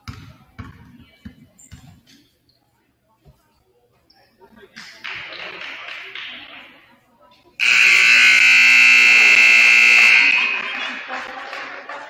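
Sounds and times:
crowd chatter: 0.0s - 12.0s
scoreboard horn blast: 7.6s - 10.7s.

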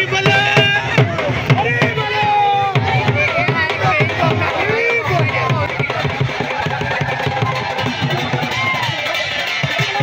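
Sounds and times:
barrel drums beaten fast: 0.0s - 10.0s
large crowd noise: 0.0s - 10.0s.

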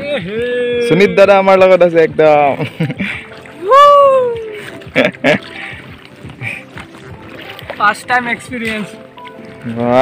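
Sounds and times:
oars splashing into water: 2.4s - 10.0s.

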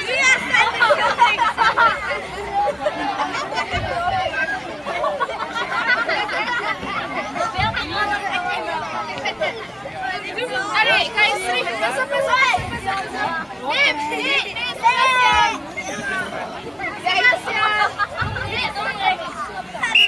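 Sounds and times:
children chattering and calling out: 0.0s - 20.0s.

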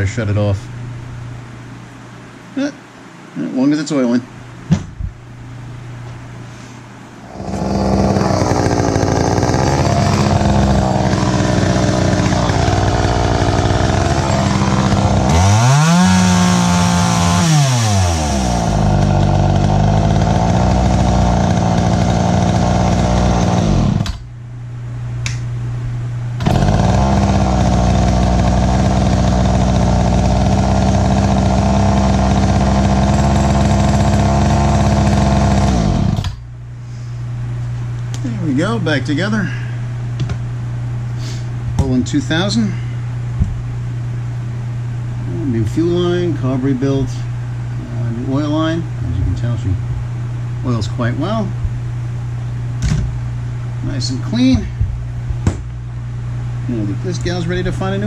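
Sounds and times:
chainsaw engine revving: 7.2s - 24.2s, 26.4s - 36.4s.

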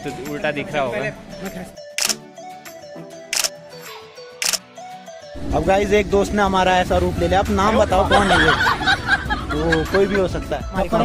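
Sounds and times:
background music: 0.0s - 11.0s
camera shutter clicks: 2.0s - 2.2s, 3.3s - 3.6s, 4.4s - 4.6s.

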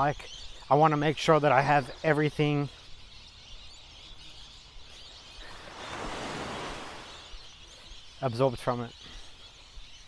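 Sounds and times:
small wave breaking on shore: 5.6s - 7.3s.

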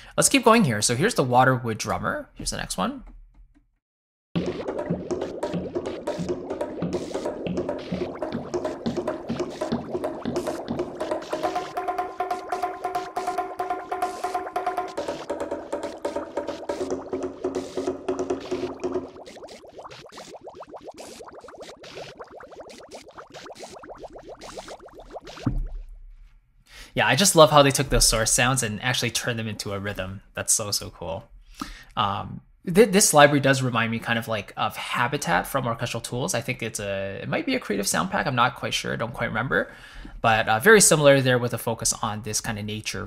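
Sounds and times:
rhythmic wood knocks and water plops: 4.4s - 26.5s.

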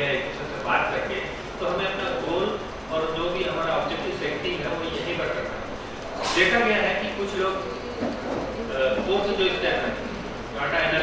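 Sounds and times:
man speaking into a microphone: 0.0s - 7.6s, 8.7s - 11.0s.

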